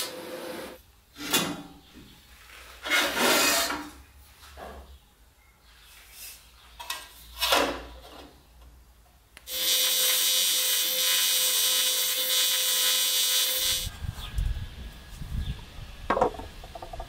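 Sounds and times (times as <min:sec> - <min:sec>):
welding arc hissing: 0:09.5 - 0:13.9
welding hum: 0:09.5 - 0:13.9.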